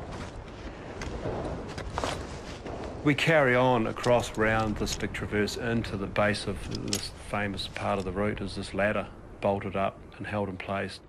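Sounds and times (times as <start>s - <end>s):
climber rustling and scuffing: 0.0s - 3.0s.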